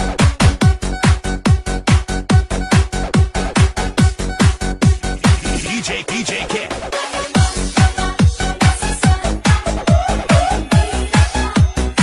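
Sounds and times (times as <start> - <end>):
deep kick drum booms: 0.0 - 5.5
electronic dance music: 0.0 - 12.0.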